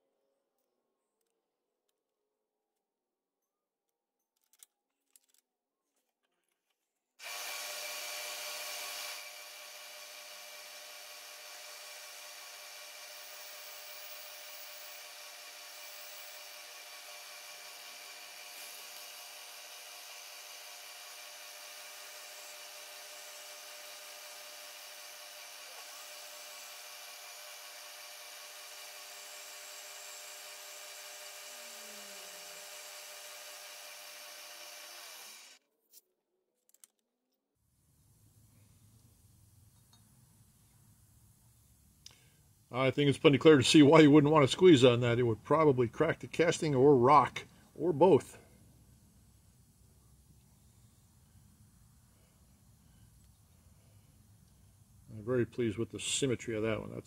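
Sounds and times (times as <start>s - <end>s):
milling machine whine: 7.2s - 35.6s.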